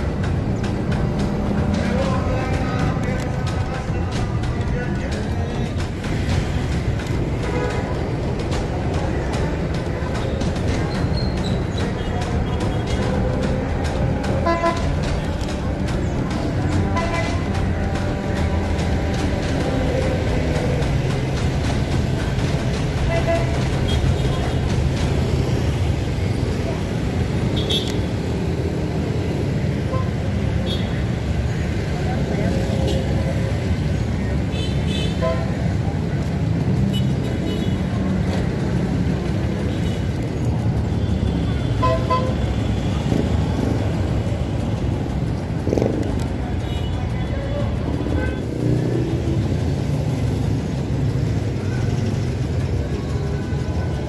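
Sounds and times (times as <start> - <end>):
street traffic rumbling: 0.0 - 54.0.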